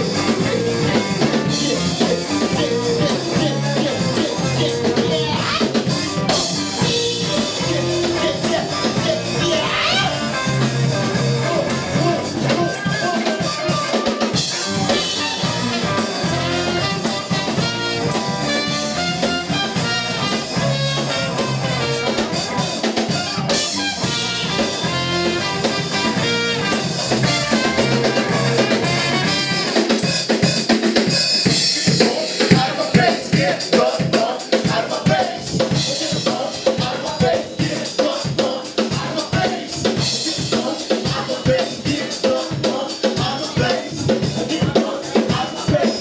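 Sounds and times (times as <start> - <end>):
drum kit beat: 0.0 - 46.0
live funk band playing: 0.0 - 46.0.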